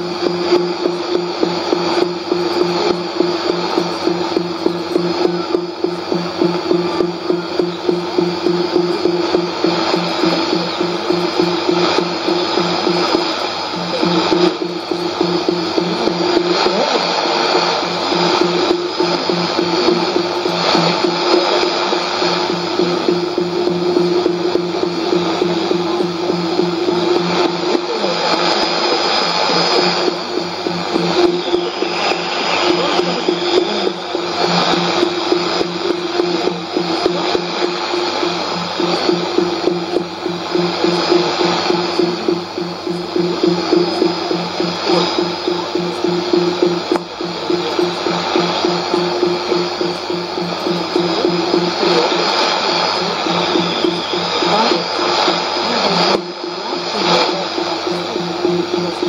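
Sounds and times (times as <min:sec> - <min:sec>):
low pulsing tone: 0:00.0 - 0:59.0
radio static: 0:00.0 - 0:59.0
steady test tone: 0:00.0 - 0:59.0.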